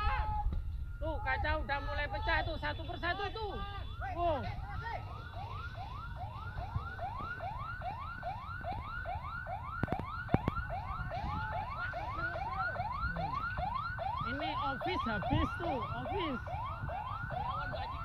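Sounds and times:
emergency siren yelping: 0.0s - 18.0s.

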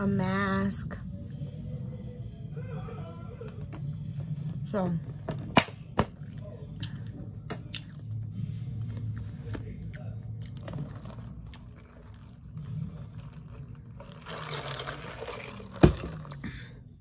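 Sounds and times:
chewing and mouth clicks: 6.8s - 8.2s
slurping sip from cup: 10.5s - 16.4s.

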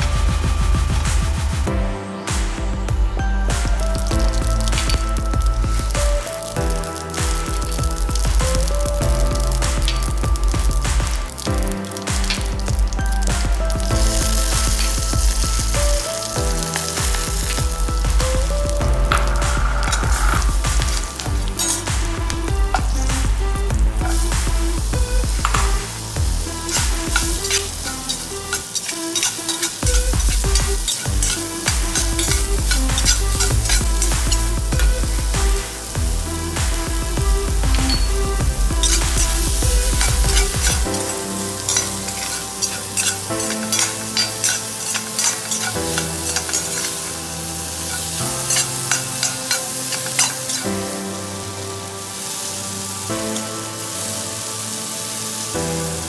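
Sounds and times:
electronic music with beat: 0.0s - 56.0s
food sizzling in hot oil: 2.2s - 56.0s
spatula stirring in pan: 23.9s - 50.9s.

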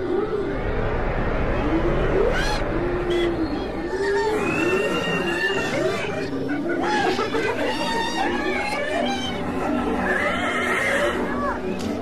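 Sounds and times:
steady low drone: 0.0s - 7.6s
wavering animal cry: 2.2s - 11.7s.

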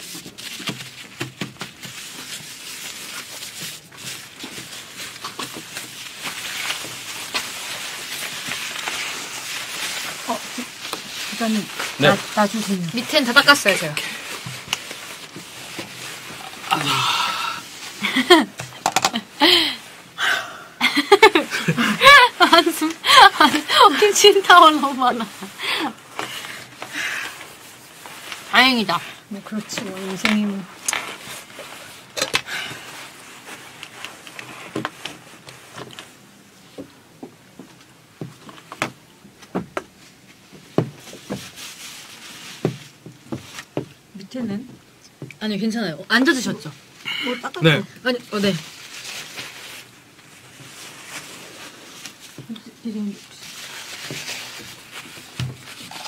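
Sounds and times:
tissues rustling on a desk: 0.0s - 20.2s, 20.9s - 45.4s, 48.0s - 56.0s
objects knocking and clicking: 18.6s - 19.2s.

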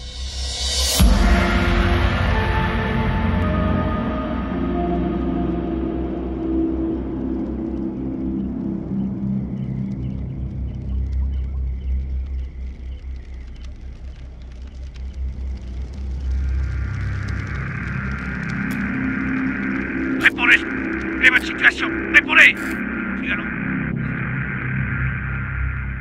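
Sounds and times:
low rumbling drone: 0.0s - 26.0s
faint low music tones: 1.0s - 20.4s.

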